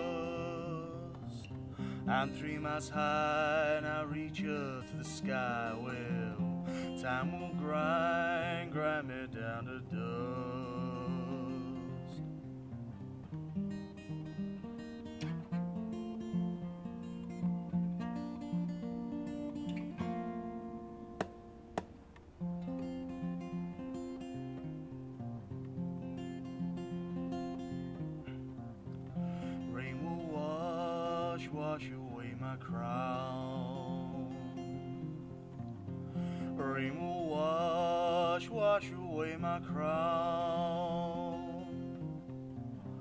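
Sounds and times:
man singing: 0:00.0 - 0:12.3, 0:29.4 - 0:35.1, 0:36.4 - 0:42.0
fingerpicked acoustic guitar: 0:00.0 - 0:43.0
sharp tap: 0:21.2 - 0:22.3.

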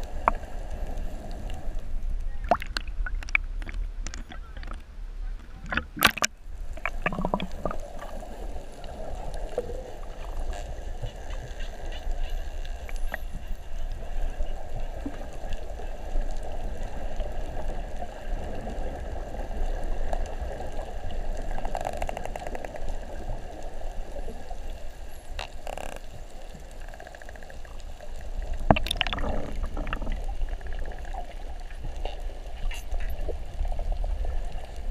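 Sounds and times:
underwater water noise: 0:00.0 - 0:34.9.

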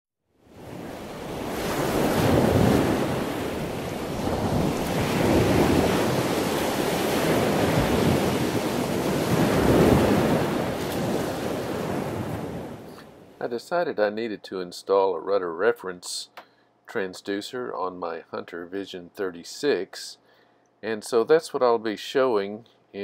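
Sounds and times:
wind and water rushing: 0:00.4 - 0:13.4.

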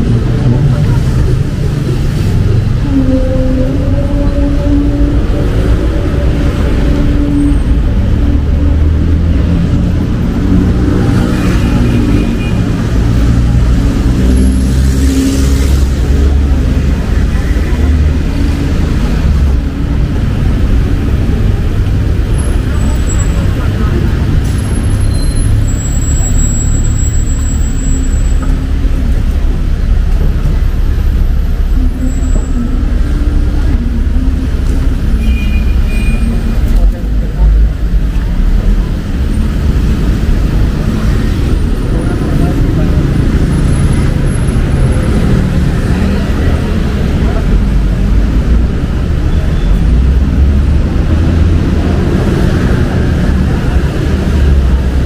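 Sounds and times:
people talking: 0:00.0 - 0:55.0
road traffic rumble: 0:00.0 - 0:55.0.

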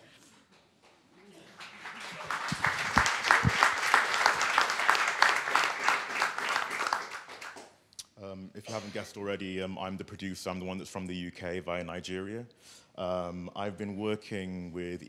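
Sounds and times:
audience applauding: 0:01.2 - 0:07.7.

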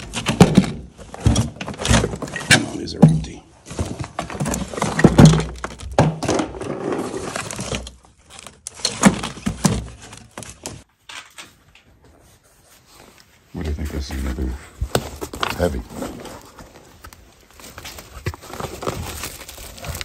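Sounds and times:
rummaging knocks and thumps: 0:00.0 - 0:12.5, 0:14.0 - 0:20.0.

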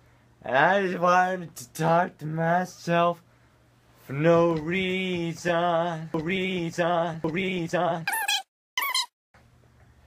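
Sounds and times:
man's falsetto squeals: 0:08.1 - 0:09.1.

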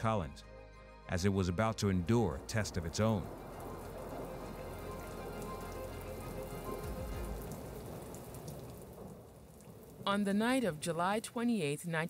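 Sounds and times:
low rumble: 0:01.6 - 0:09.3
steady rain falling: 0:02.0 - 0:12.0.

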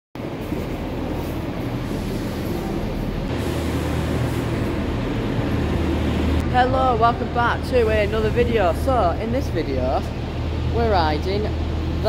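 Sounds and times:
diesel railbus engine idling: 0:00.2 - 0:12.0.

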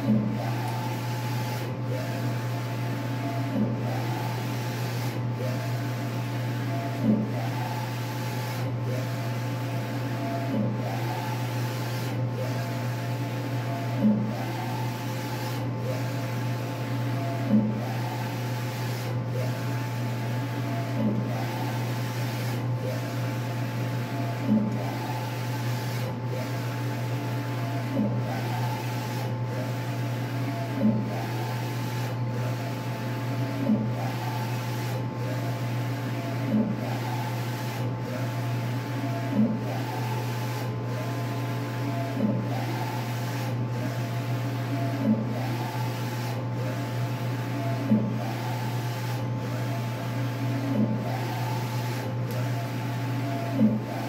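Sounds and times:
printer carriage motor whine: 0:00.0 - 0:54.0.

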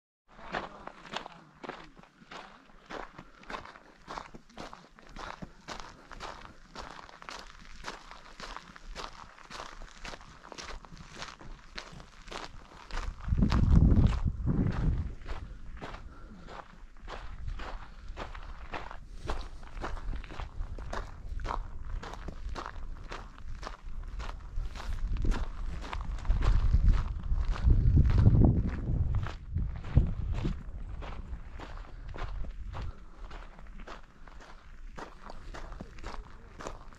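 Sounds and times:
footsteps of hiker walking: 0:00.6 - 0:36.9
low rumbling on microphone: 0:12.8 - 0:33.2.

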